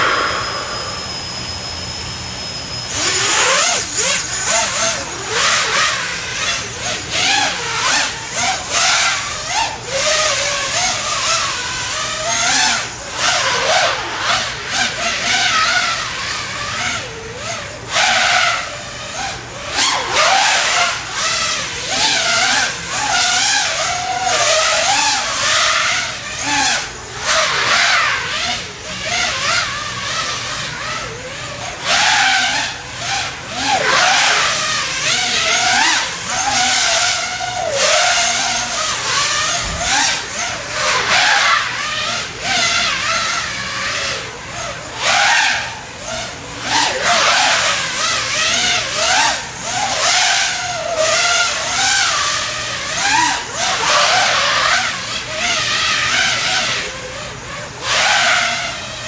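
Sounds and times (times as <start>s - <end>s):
quadcopter propellers whining: 0.0s - 59.0s.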